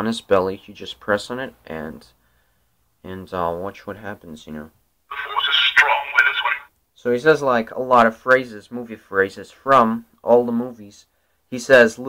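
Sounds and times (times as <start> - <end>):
toy voice phrase through tiny speaker: 5.1 - 6.7.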